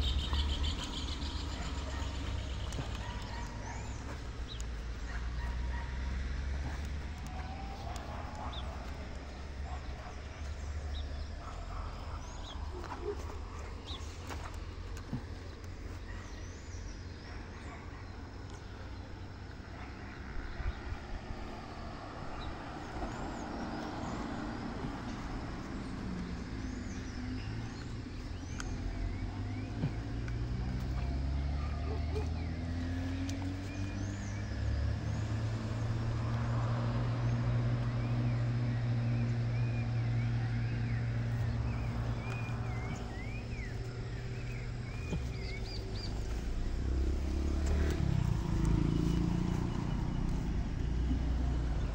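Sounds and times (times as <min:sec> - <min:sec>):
small birds chirping: 0:00.0 - 0:51.9
vehicle engine running: 0:00.0 - 0:51.9.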